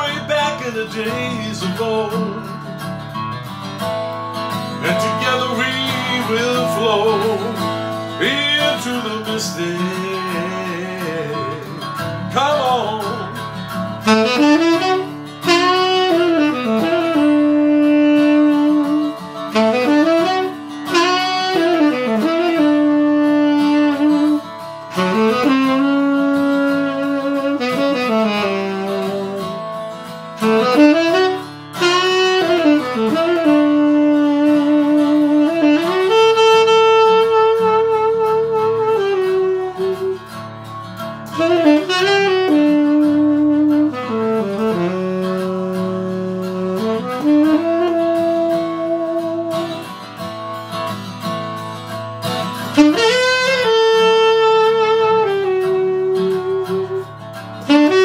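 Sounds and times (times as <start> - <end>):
guitar backing track: 0.0 - 58.0
saxophone solo: 0.0 - 58.0.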